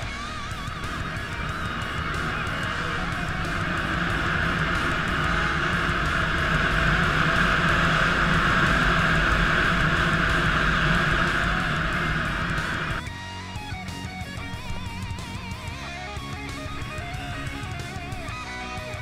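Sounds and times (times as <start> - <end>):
motorcycle engine running: 0.0 - 13.1
guitar music: 0.0 - 19.0.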